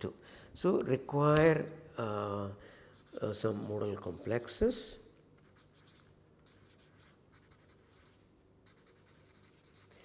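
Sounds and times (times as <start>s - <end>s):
marker scratching on paper: 2.9s - 4.7s, 5.4s - 10.0s.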